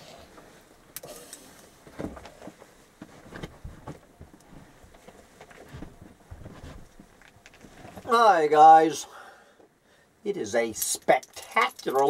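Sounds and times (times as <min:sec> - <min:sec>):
clothing rustling: 0:01.9 - 0:08.1.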